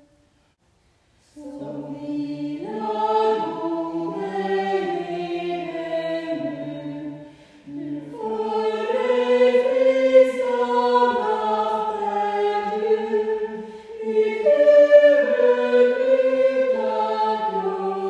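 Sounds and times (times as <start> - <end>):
small choir singing: 1.3 - 18.0
brief breath: 7.2 - 7.7, 13.6 - 14.0.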